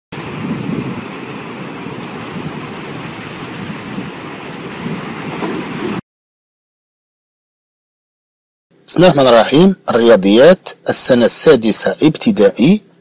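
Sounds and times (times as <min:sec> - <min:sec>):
steady rushing noise: 0:00.1 - 0:06.0.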